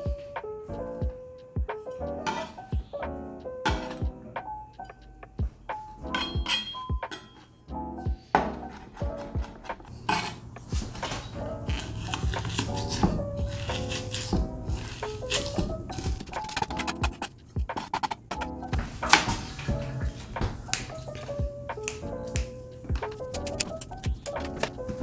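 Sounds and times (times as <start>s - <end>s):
background music: 0.0s - 25.0s
knife chopping on wooden board: 11.7s - 18.5s.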